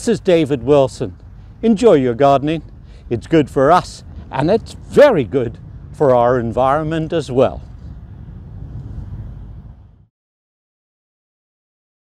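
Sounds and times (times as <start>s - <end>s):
low outdoor background rumble: 0.0s - 10.1s.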